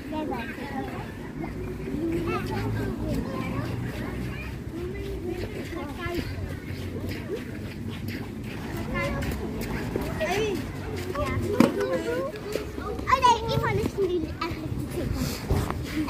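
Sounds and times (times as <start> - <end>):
young children chattering: 0.0 - 16.0.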